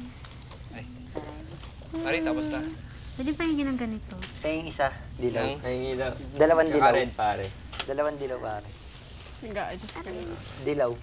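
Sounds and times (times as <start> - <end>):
young people talking: 1.0 - 4.4.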